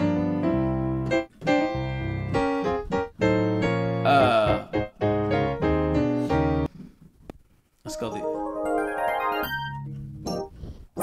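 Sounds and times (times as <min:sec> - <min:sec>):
grand piano chords: 0:00.0 - 0:06.7, 0:07.9 - 0:10.5.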